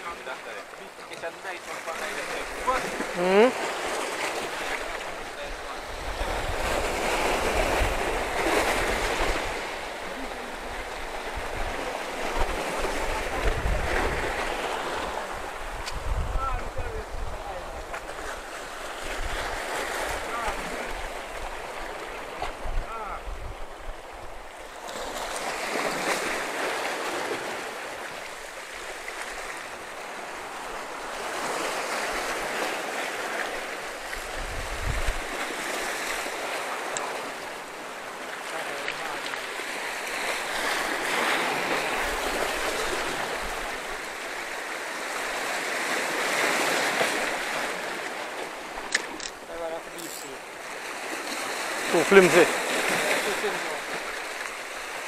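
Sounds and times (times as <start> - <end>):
surf breaking over rocks: 24.9 - 55.0.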